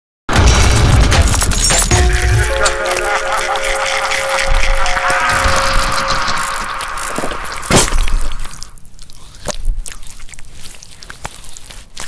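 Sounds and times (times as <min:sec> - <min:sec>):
loud shattering crash: 0:00.3 - 0:08.8
deep rumble: 0:00.5 - 0:08.8.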